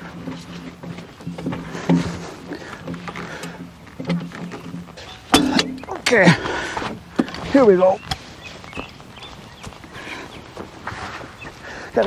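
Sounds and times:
sharp metal clunk: 5.0s - 6.0s.

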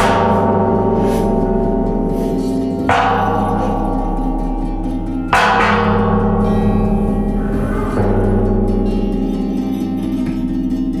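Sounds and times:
metal pot struck like a gong: 0.0s - 10.7s
steady low hum: 0.0s - 10.8s.

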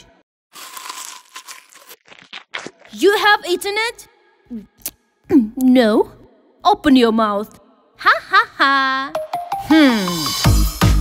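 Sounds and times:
orange peel tearing: 0.6s - 3.0s.

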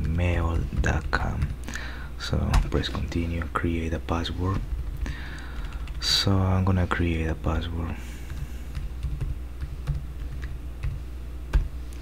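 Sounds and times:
computer keyboard typing: 0.0s - 1.6s, 4.5s - 6.1s, 8.3s - 11.7s.

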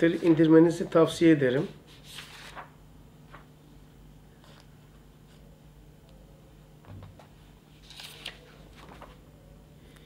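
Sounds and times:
book pages turning: 1.9s - 3.5s, 7.8s - 9.2s.

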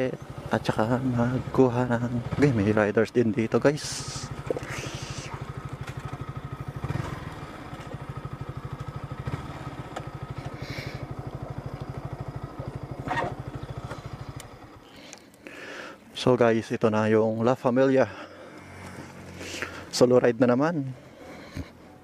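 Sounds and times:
motorcycle engine idling: 0.0s - 16.6s, 17.4s - 22.0s.

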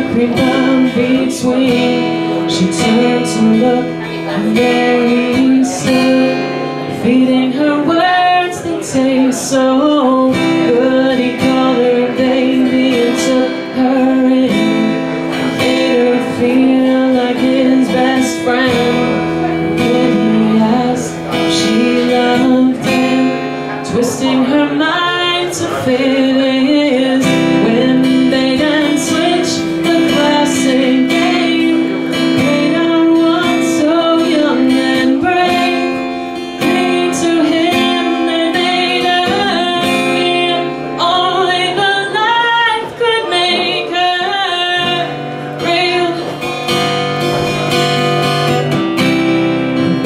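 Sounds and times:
acoustic guitar strumming: 0.0s - 50.0s
woman singing: 0.0s - 50.0s.

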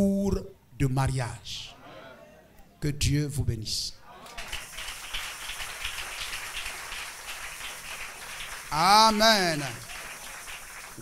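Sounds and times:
congregation applauding: 4.1s - 11.0s.

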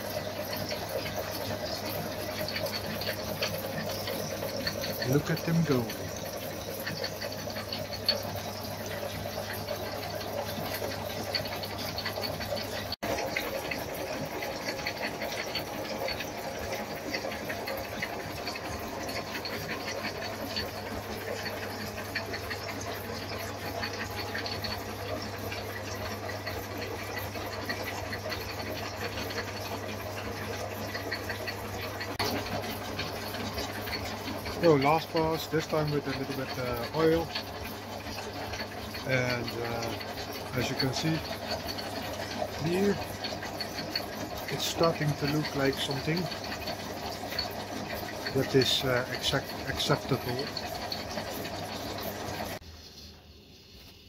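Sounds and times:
motor hum: 0.0s - 54.0s
fine ticking of cutting: 0.5s - 52.6s.

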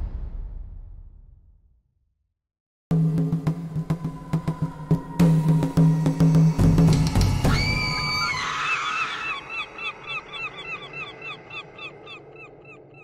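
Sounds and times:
echoing chirp-like call: 3.0s - 13.0s.

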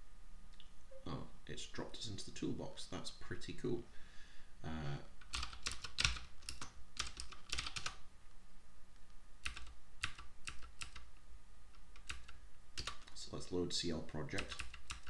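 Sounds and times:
typing on computer keyboard: 5.2s - 8.0s, 9.4s - 11.1s, 11.8s - 13.2s, 14.4s - 15.0s.

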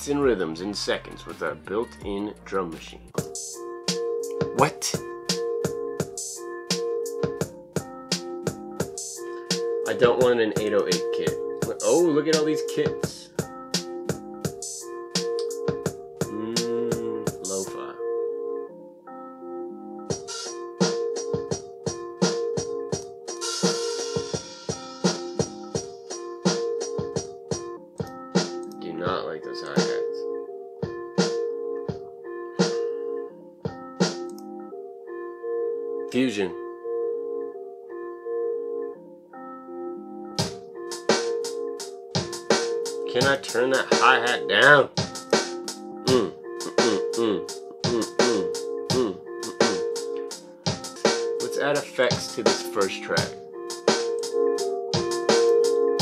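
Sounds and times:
lo-fi drum machine beat: 3.1s - 17.9s, 20.1s - 30.2s, 30.8s - 32.9s, 33.6s - 34.4s, 40.4s - 56.0s
electric piano chords: 3.1s - 56.0s.

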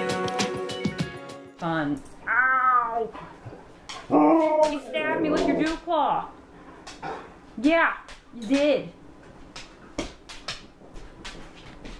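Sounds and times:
dog whining howls: 4.1s - 5.7s.

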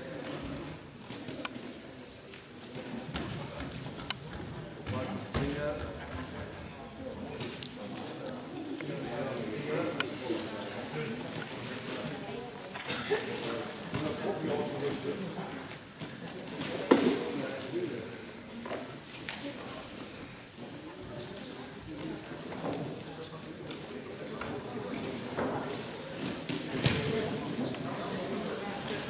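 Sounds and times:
low hall background: 0.0s - 29.0s.

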